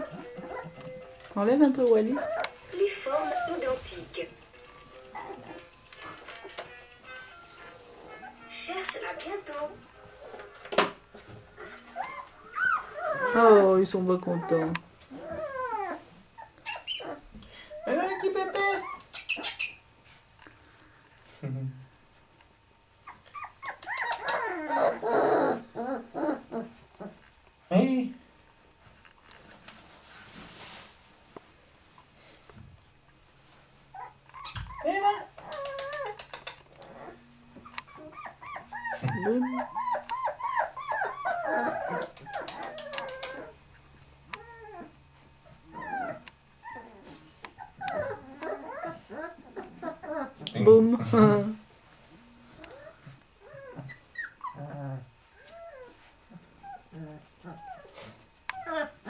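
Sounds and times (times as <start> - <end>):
puppies yelping and whining: 0.0 - 6.6, 7.8 - 8.8, 11.3 - 20.0, 23.0 - 27.3, 33.9 - 50.5, 52.4 - 59.0.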